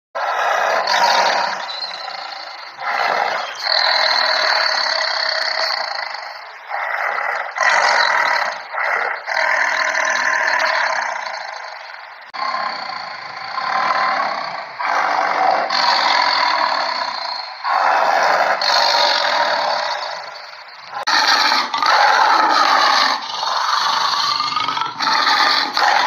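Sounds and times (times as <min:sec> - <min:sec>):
tiger growling and roaring: 0:00.2 - 0:26.0.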